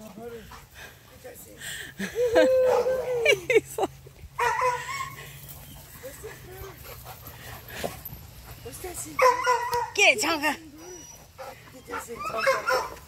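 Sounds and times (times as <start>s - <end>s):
dog whimpering: 10.6s - 12.7s.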